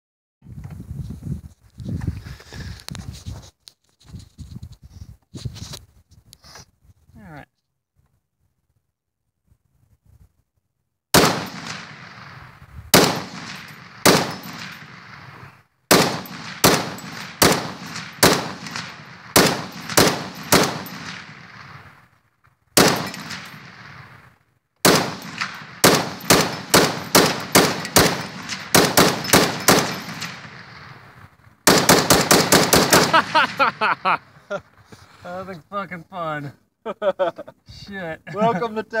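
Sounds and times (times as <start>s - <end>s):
machine gun firing: 11.2s - 12.4s, 13.0s - 15.2s, 15.9s - 21.5s, 22.8s - 24.1s, 24.8s - 31.0s, 31.6s - 33.7s.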